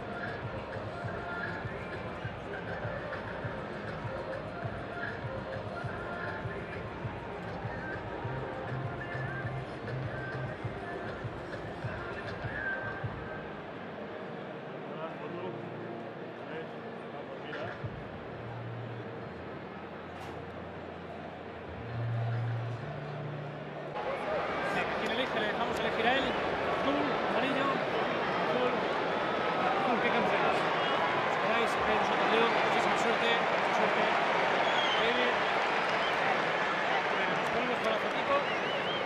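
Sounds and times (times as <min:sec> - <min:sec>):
background music: 0:00.0 - 0:39.0
many voices chatting: 0:00.0 - 0:39.0.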